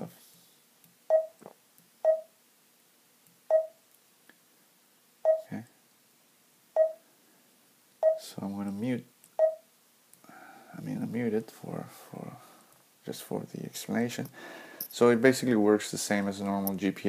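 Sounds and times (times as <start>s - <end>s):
touchscreen beeps: 1.1s - 1.4s, 2.0s - 2.3s, 3.5s - 3.8s, 5.3s - 5.5s, 6.8s - 7.0s, 8.0s - 8.2s, 9.4s - 9.6s.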